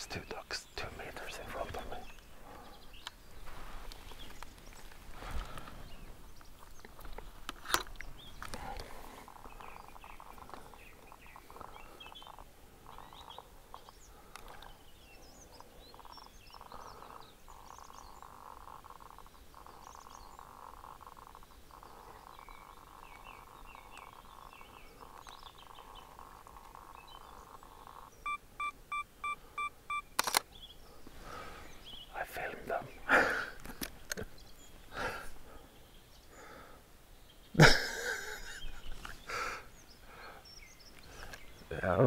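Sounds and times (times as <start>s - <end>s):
faint bird chirps: 0.0s - 33.6s, 34.2s - 42.0s
background hum: 0.0s - 42.0s
camera electronic beeps: 28.2s - 30.5s
camera shutter click: 30.2s - 30.5s.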